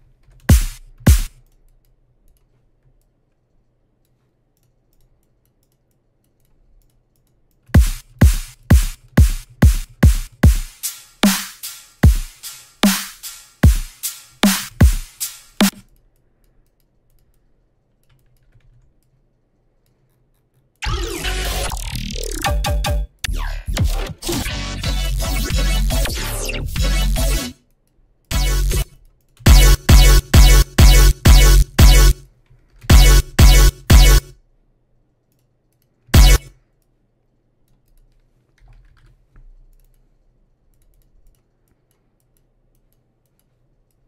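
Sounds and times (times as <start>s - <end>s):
computer keyboard clicks: 4.0s - 7.8s, 15.7s - 20.8s, 37.6s - 40.1s, 40.7s - 44.0s
dubstep music with wobbling bass: 20.8s - 27.6s, 28.3s - 28.9s, 29.5s - 32.2s, 32.9s - 34.3s, 36.2s - 36.5s.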